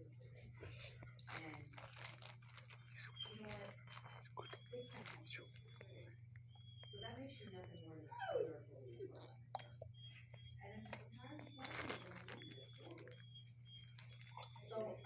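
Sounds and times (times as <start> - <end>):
soft background voices: 0.0 - 15.0.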